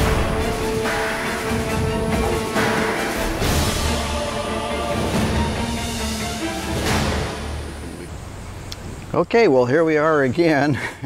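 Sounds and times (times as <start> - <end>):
intro theme music: 0.0 - 8.4.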